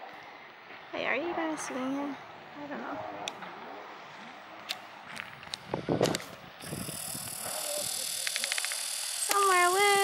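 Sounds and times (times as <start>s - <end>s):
high outdoor hiss: 3.8s - 10.0s
rapid chirps: 6.6s - 10.0s.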